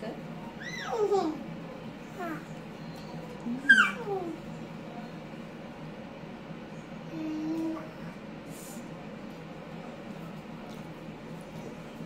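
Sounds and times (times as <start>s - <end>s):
child squealing: 3.7s - 4.1s.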